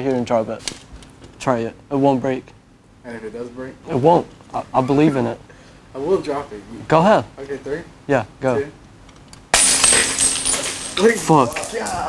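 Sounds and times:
glass shattering on floor: 9.5s - 12.0s
glass shards tinkling: 9.6s - 12.0s.

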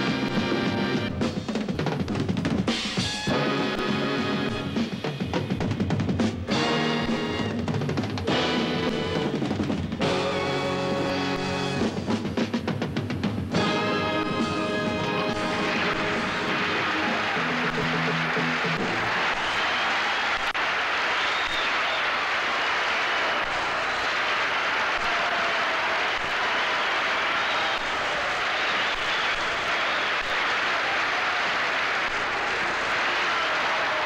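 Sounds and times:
audience applause: 13.5s - 34.0s.

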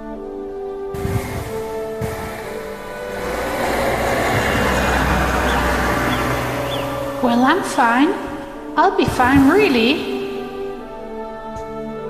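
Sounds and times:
faint held music: 0.0s - 12.0s
vehicle road noise rumble: 1.0s - 10.0s.

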